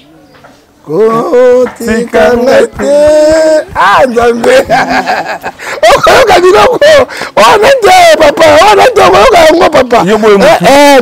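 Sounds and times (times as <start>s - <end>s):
man singing held notes: 0.9s - 4.7s.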